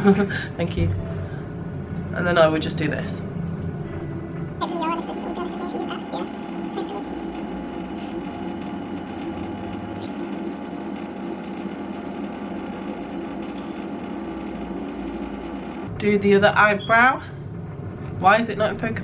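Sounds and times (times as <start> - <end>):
steady droning hum: 0.0 - 19.0.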